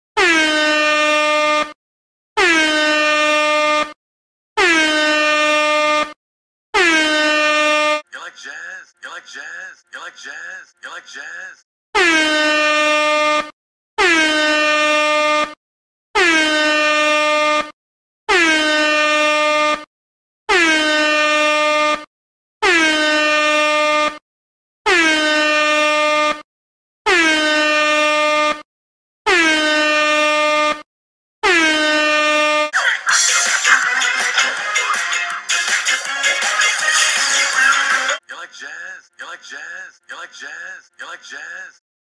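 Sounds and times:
air horn blasts: 0:00.2 - 0:01.8, 0:02.4 - 0:03.9, 0:12.0 - 0:15.5
loud music: 0:32.8 - 0:38.2.

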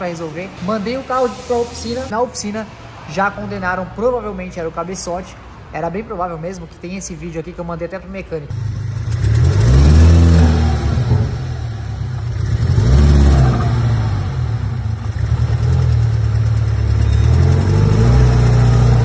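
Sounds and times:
car engine revving roughly: 0:09.0 - 0:19.0.

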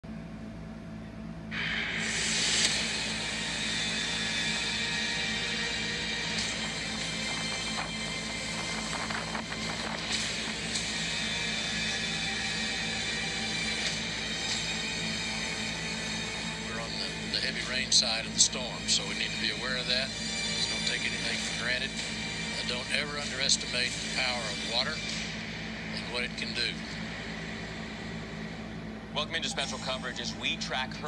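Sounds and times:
television background music: 0:01.6 - 0:31.0.

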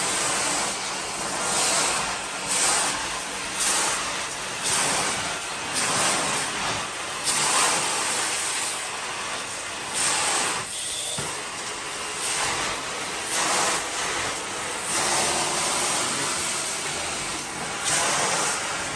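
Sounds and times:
carpet extraction wand hissing: 0:00.0 - 0:18.9.

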